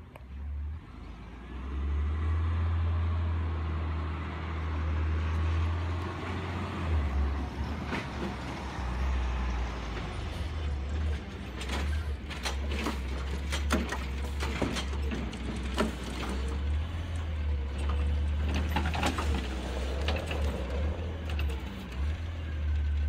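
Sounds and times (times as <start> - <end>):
diesel truck engine rumbling: 0.0 - 23.0
metal clanks and rattles: 10.0 - 22.8.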